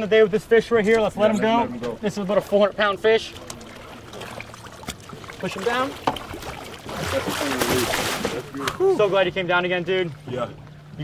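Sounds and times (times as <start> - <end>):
water splashing hard: 3.0 - 10.4.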